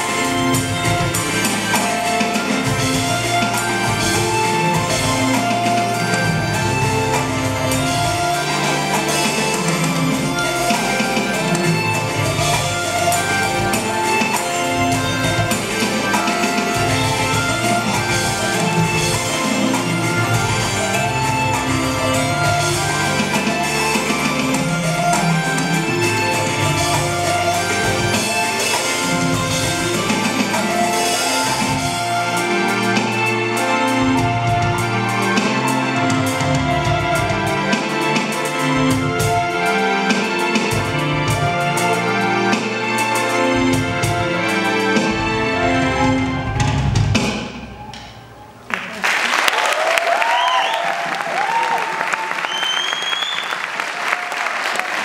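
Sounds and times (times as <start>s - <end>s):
electronic drum kit: 0.0s - 39.6s
backing track with bass: 0.0s - 48.3s.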